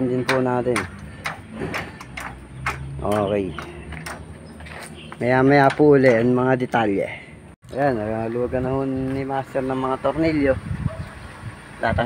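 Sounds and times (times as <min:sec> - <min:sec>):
metallic clicks and clacks: 0:00.3 - 0:04.3.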